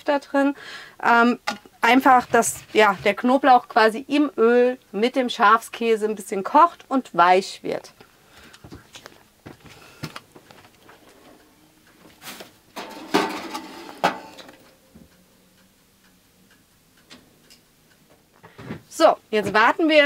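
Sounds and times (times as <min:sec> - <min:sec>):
baking dish scraping into oven: 0:12.2 - 0:14.6
oven door clunk: 0:12.8 - 0:14.5.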